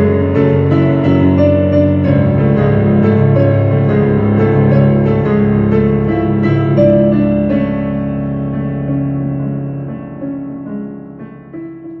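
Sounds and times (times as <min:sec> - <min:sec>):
digital piano music: 0:00.0 - 0:12.0.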